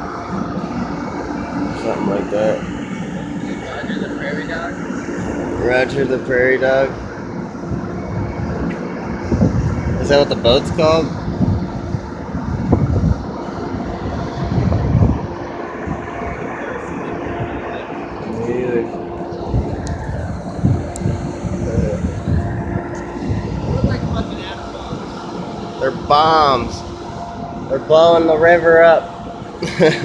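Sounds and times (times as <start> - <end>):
boat engine humming: 0.0 - 30.0
wind buffeting microphone: 0.0 - 30.0.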